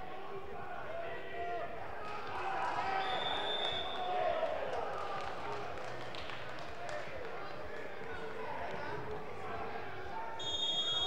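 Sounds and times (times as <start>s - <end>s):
voices echoing in a hall: 0.0s - 11.0s.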